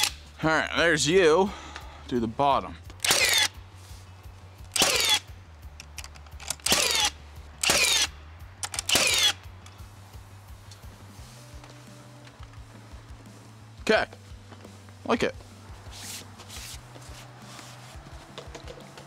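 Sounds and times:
faint background music: 0.0 - 19.0
battery power tool whining: 3.0 - 3.5, 4.7 - 5.2, 8.8 - 9.4.

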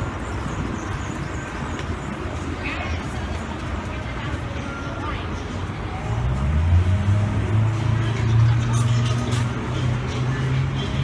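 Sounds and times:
city street traffic rumble: 0.0 - 11.0.

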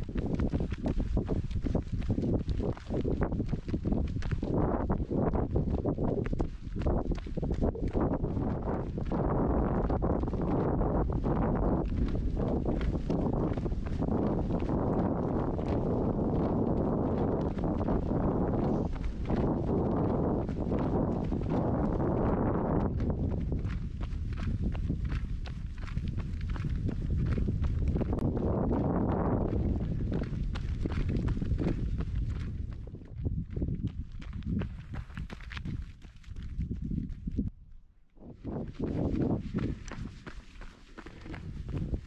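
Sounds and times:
running footsteps on asphalt: 0.0 - 37.5, 38.2 - 42.0
wind buffeting microphone: 0.0 - 42.0.

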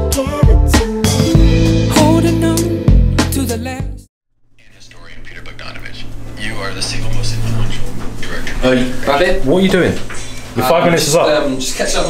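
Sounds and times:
steady low hum: 4.5 - 12.0
man talking: 4.6 - 12.0.

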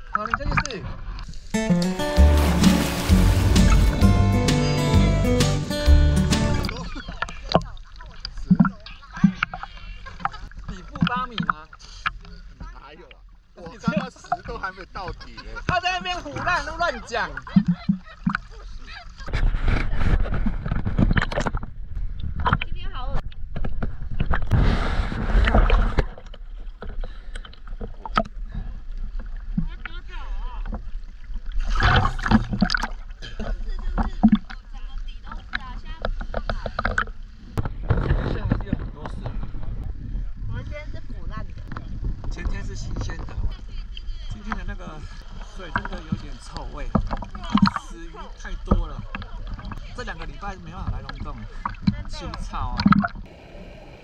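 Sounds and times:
sea water sloshing and splashing: 0.0 - 4.3, 6.6 - 53.3.

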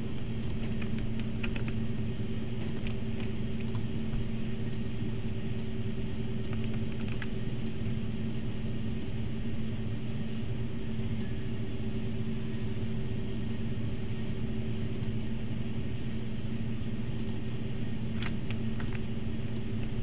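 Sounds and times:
low electrical hum: 0.0 - 20.0
keyboard and mouse clicks: 0.4 - 1.8, 2.6 - 3.9, 6.4 - 7.8, 18.1 - 20.0.

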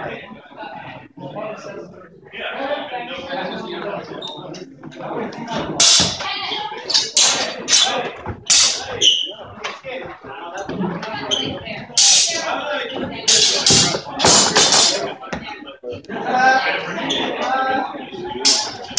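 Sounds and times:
people talking in a hall: 0.0 - 18.9.

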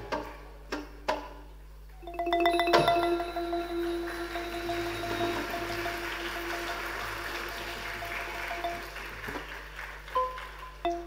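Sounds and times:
mallet percussion ensemble: 2.0 - 9.5
audience applause: 3.8 - 10.9.

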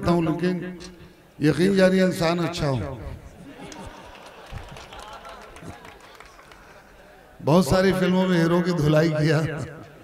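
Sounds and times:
murmur of chatter: 3.1 - 7.4.

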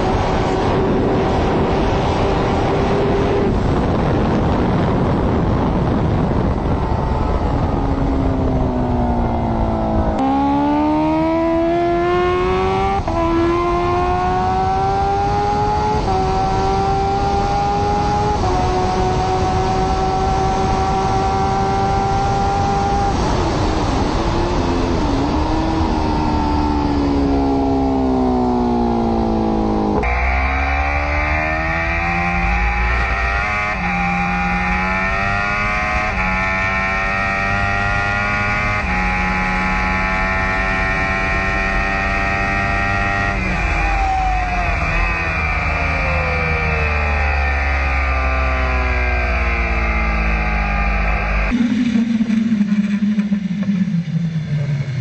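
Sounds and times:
motorcycle engine revving: 0.0 - 55.0.

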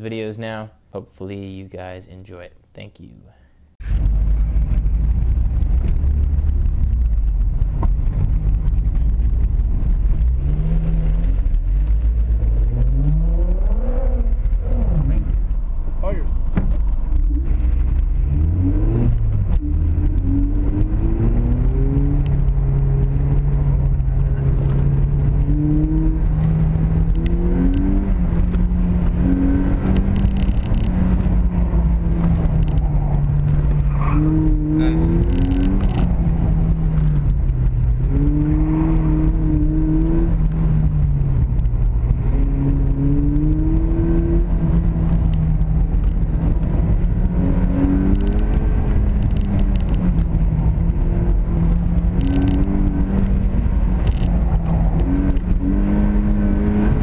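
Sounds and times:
car engine revving: 3.8 - 57.0.

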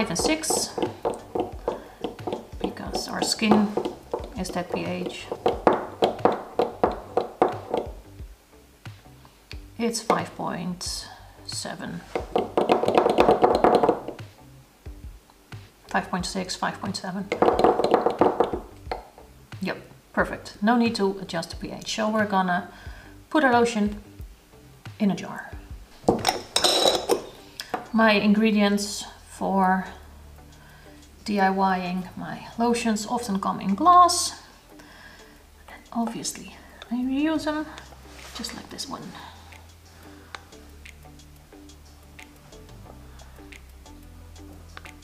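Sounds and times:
jar knocking on stone counter: 0.0 - 8.0, 12.2 - 14.2, 17.3 - 19.1, 26.1 - 27.3.

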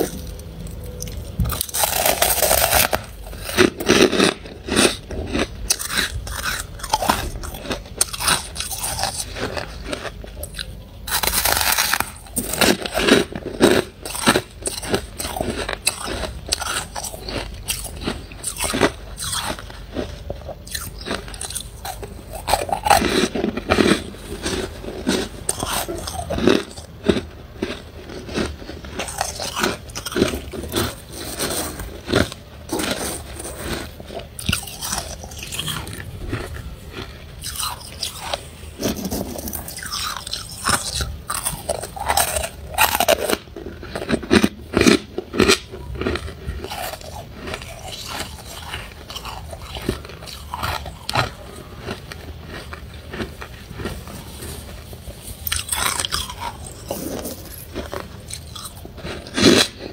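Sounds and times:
chewing crunchy frost: 0.0 - 59.9.

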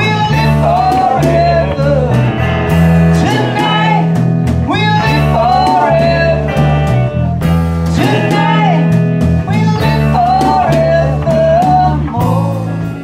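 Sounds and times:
bass line: 0.0 - 13.0
drum kit with cymbals: 0.0 - 13.0
electric guitars: 0.0 - 13.0
man singing: 0.0 - 13.0.

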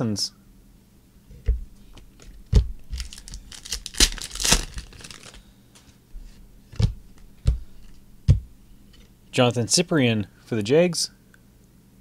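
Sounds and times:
cards tapping: 1.4 - 5.9, 6.7 - 9.0
card stock scraping rustle: 2.2 - 6.4.

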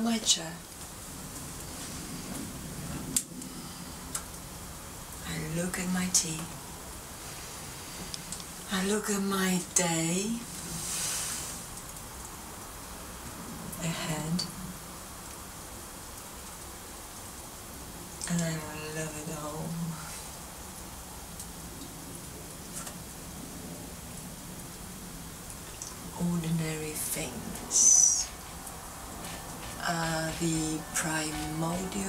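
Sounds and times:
background hiss: 0.0 - 32.0.

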